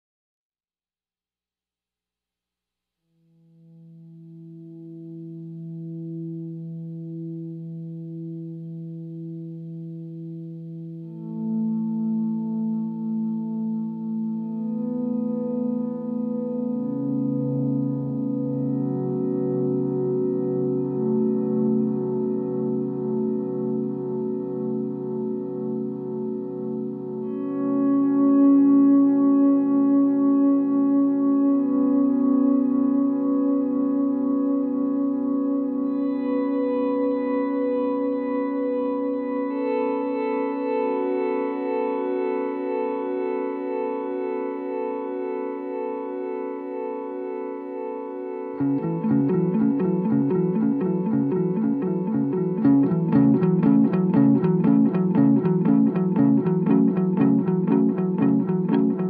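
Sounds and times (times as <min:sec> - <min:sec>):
electric guitar with echoing delay: 0:03.7 - 0:59.0.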